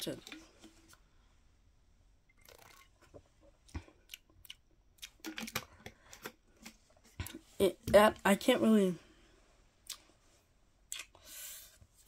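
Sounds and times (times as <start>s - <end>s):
mouth clicks and smacks: 3.6s - 6.3s, 9.8s - 10.1s, 10.9s - 11.2s.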